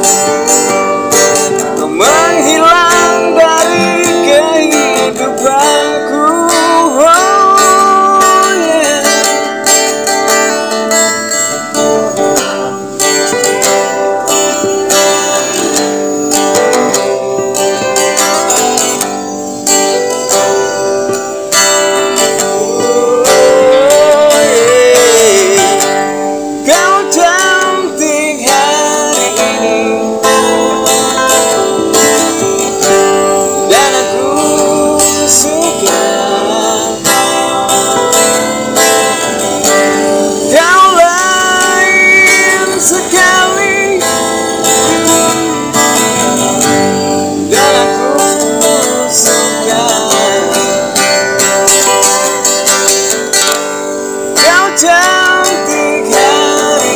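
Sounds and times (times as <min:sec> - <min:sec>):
man singing: 0:00.0 - 0:53.5, 0:54.2 - 0:56.9
acoustic guitar strumming: 0:00.0 - 0:56.9.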